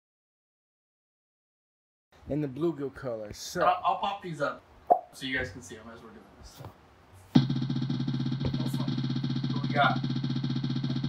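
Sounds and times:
looped electronic spinning tone: 0:07.4 - 0:11.0.

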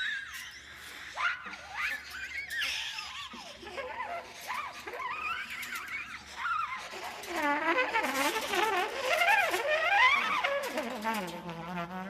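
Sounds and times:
free improvised horn playing: 0:07.2 - 0:12.0.

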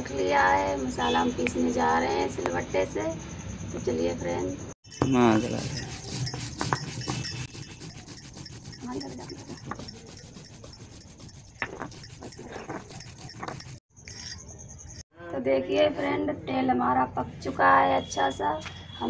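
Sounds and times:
stone scraping on stone slab: 0:04.9 - 0:15.0.

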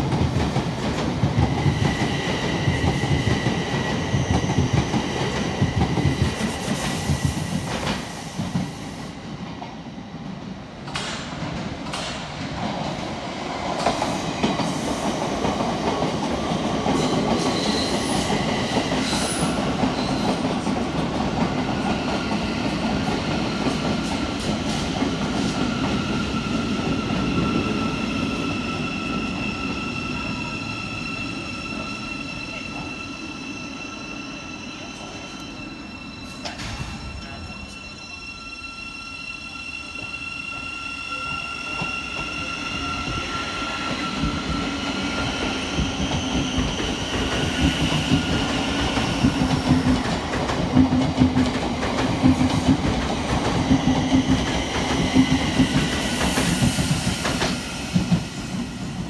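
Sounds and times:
train rumbling: 0:00.0 - 0:09.9, 0:41.4 - 0:59.0
high wheel squeal: 0:26.0 - 0:49.3.

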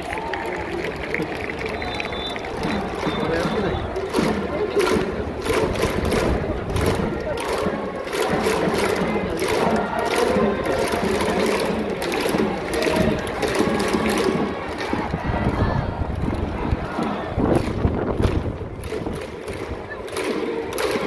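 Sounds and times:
drums beating: 0:00.0 - 0:21.0
people clapping: 0:00.0 - 0:21.0
crowd chanting in unison: 0:02.5 - 0:21.0.

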